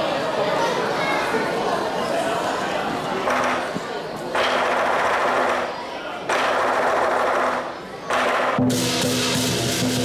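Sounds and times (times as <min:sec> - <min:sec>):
lion dance percussion rolls: 0:06.3 - 0:10.0.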